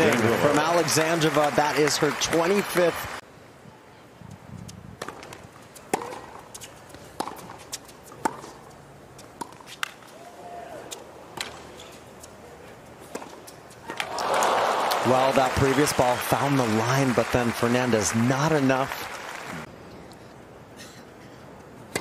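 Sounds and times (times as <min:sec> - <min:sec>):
racket hitting tennis ball: 0:05.0 - 0:08.7.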